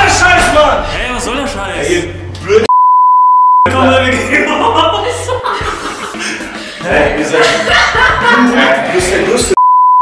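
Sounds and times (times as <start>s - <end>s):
censor bleep tone: 2.7s - 3.7s, 9.6s - 10.0s.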